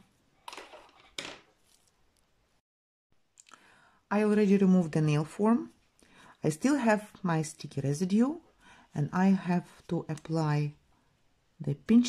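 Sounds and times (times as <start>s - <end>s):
handling noises of small objects: 0.4s - 2.3s.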